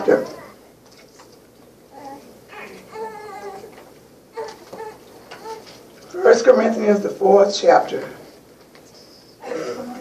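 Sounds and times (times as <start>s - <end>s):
young child fussing cries: 4.3s - 6.3s.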